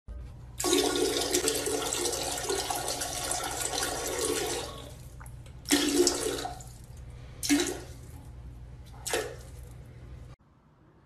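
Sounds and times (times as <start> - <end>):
toilet flushing: 0.6 - 9.6.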